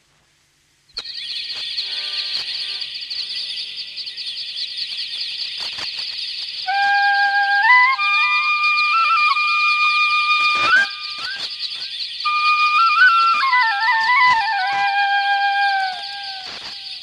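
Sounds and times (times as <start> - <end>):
flock of birds chirping: 1.0 - 17.0
flute melody: 6.7 - 17.0.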